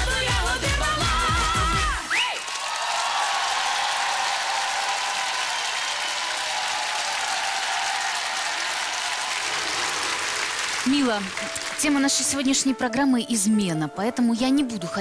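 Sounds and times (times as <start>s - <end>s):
audience applauding: 2.0s - 12.6s.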